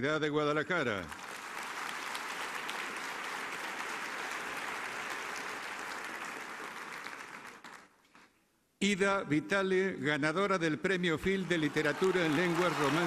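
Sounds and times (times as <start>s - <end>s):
audience applauding: 1.1s - 8.0s, 11.3s - 13.0s.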